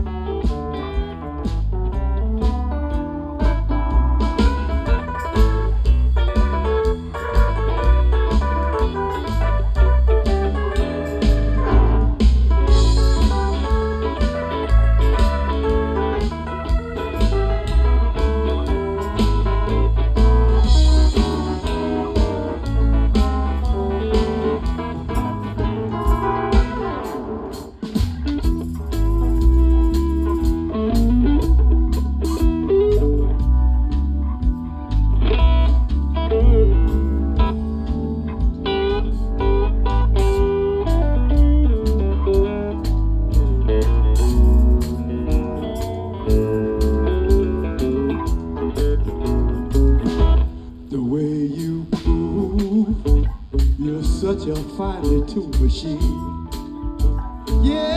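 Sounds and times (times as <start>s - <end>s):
blues-rock band playing: 0.0s - 57.9s
electric guitar lead: 0.0s - 57.9s.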